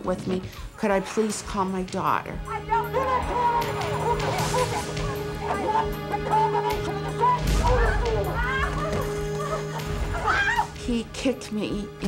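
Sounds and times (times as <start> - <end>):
high wavering cries of distress: 2.4 - 10.8
held music drone: 2.4 - 12.0.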